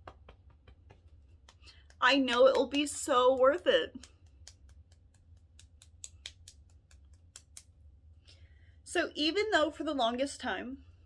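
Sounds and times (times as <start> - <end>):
fingertips tapping on wrist: 3.3 - 7.7.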